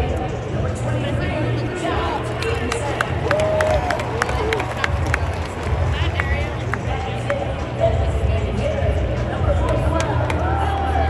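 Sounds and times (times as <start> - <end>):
crowd chatter: 0.0 - 11.0
music over public address system: 0.0 - 11.0.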